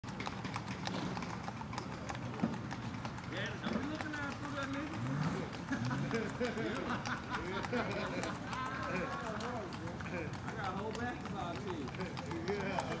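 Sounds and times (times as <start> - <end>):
hoofbeats on pavement: 0.0 - 13.0
people's voices: 3.3 - 13.0.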